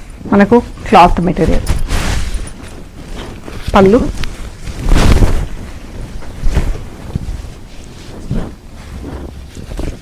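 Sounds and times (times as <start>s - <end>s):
cloth rustling: 0.0s - 10.0s
cloth swish: 0.0s - 10.0s.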